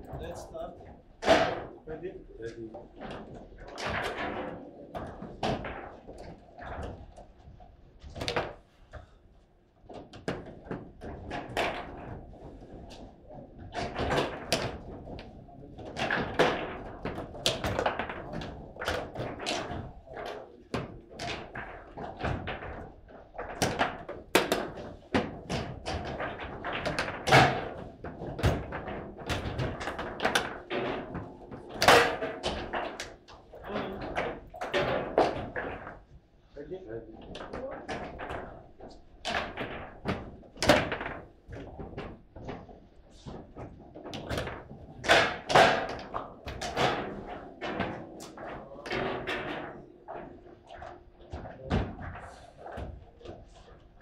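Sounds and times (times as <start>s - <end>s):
table football ball cracking: 8.0s - 8.6s, 9.9s - 36.0s, 37.3s - 53.4s.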